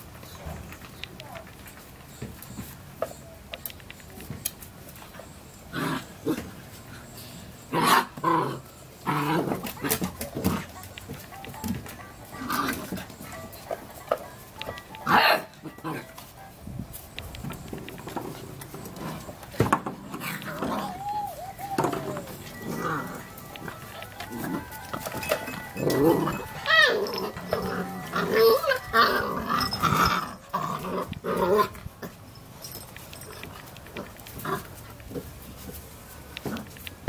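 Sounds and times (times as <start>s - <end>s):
puppies barking and yipping: 6.0s - 35.0s.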